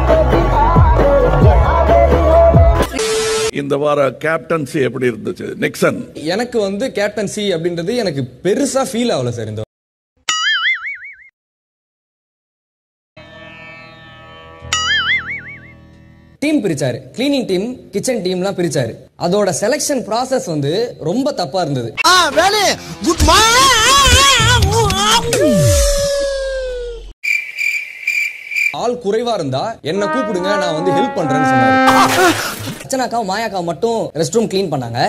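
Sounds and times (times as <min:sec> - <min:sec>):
cartoon spring boing: 0:10.3 - 0:11.3, 0:14.7 - 0:15.8
cricket chirping: 0:27.2 - 0:28.8
held musical note: 0:29.9 - 0:32.6.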